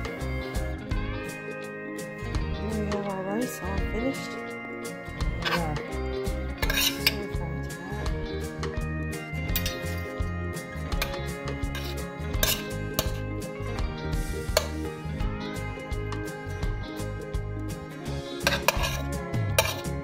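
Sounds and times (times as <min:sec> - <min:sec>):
metal spoon scraping a skillet: 0:05.3 - 0:05.9, 0:06.5 - 0:08.1, 0:09.5 - 0:10.2, 0:10.9 - 0:13.3, 0:18.3 - 0:20.0.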